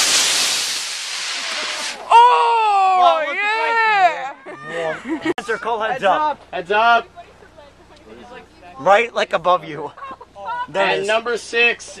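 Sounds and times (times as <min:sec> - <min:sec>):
rocket motors rushing hiss: 0:00.0 - 0:02.1.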